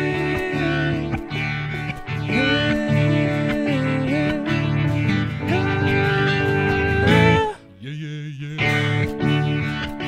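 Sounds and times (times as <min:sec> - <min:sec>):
acoustic guitars strummed: 0:00.0 - 0:10.0
keyboard: 0:00.0 - 0:10.0.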